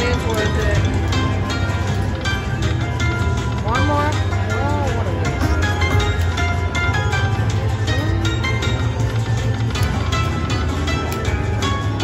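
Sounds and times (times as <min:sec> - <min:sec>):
slot machine music and chimes: 0:00.0 - 0:12.0.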